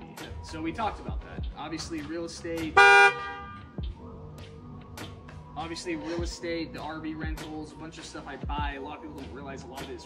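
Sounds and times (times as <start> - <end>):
background music: 0.0 - 10.0
car horn honk: 2.8 - 3.7.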